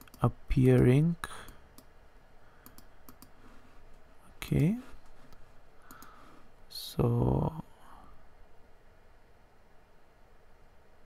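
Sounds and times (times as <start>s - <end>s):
computer mouse clicks: 0.0s - 1.9s, 2.6s - 3.4s, 5.8s - 6.2s.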